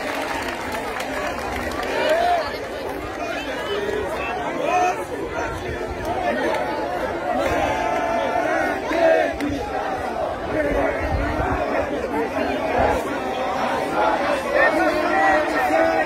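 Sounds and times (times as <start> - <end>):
children chattering and calling out: 0.0 - 16.0.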